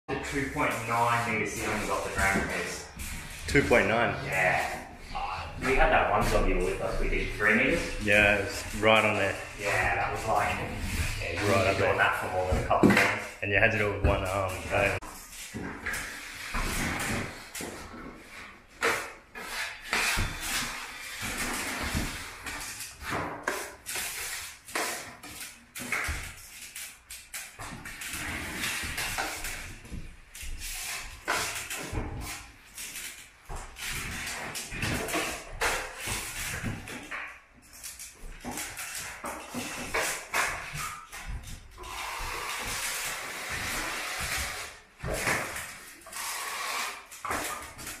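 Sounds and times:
drywall knife scraping compound: 0.2 - 13.1, 14.1 - 37.0, 38.4 - 48.0.

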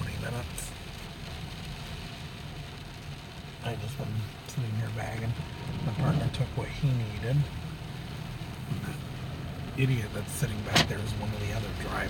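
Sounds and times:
low engine rumble inside vehicle: 0.0 - 12.0.

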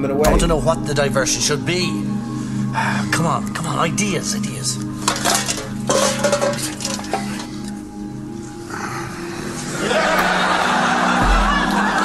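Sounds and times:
clinks and clatters: 5.0 - 7.8.

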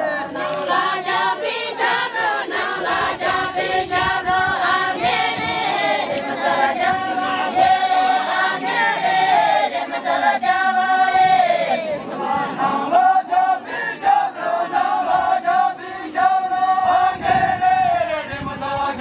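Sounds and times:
group singing unaccompanied: 0.0 - 19.0.

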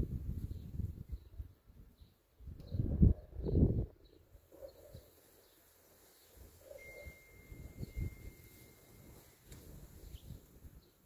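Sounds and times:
thin steady high tone: 6.4 - 9.5.

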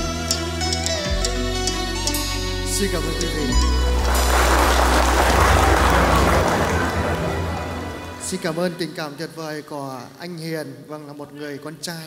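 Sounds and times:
audience applauding: 3.7 - 8.6.

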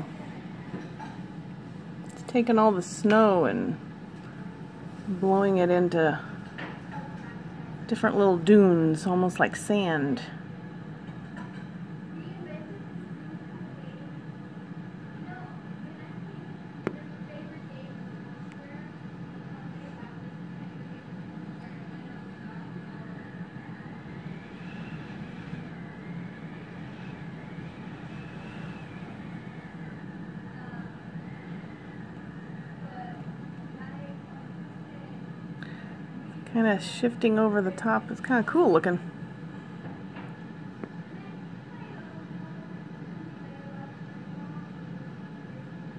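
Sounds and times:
faint wavering whistle: 23.0 - 33.4
strong wind blowing: 23.1 - 33.5.

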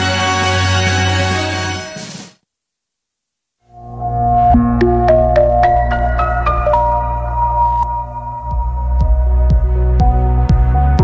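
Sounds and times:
synth chords over bass: 3.7 - 11.0.

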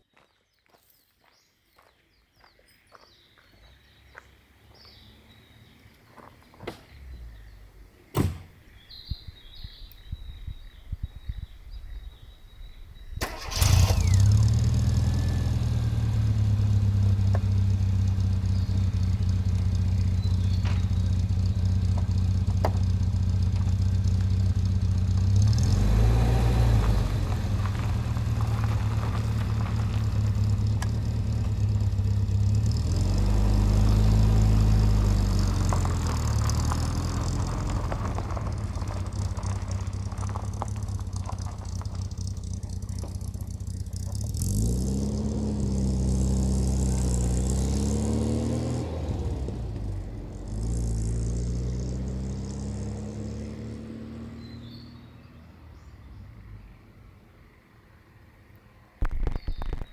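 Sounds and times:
car engine starting: 13.0 - 56.7
car engine idling: 13.2 - 48.0.

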